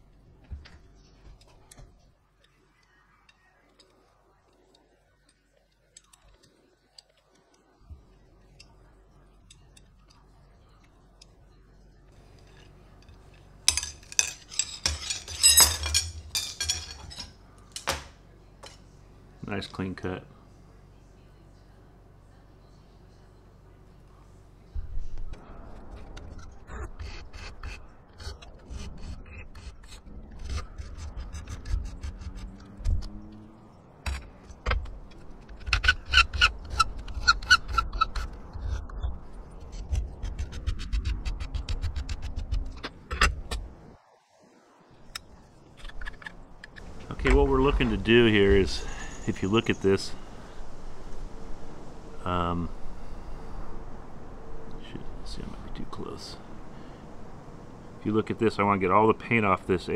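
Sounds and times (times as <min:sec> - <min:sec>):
aluminium shafts clinking together: 0:12.2 - 0:18.8, 0:45.8 - 0:51.3.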